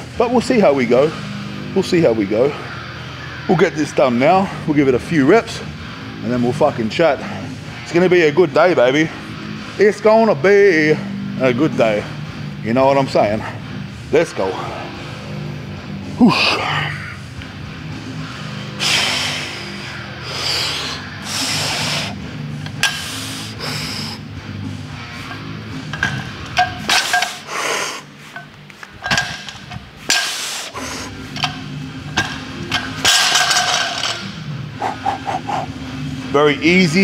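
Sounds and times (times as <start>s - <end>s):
background music: 0.0s - 37.0s
hard breathing: 18.7s - 22.3s, 22.9s - 24.3s, 34.7s - 35.8s.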